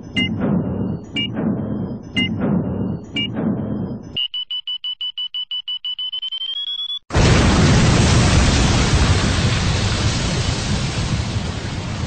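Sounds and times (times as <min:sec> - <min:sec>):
low rumble: 0:00.0 - 0:04.2
electronic beeps: 0:00.0 - 0:07.1
fast run of short beeps: 0:00.2 - 0:01.4, 0:02.2 - 0:07.1.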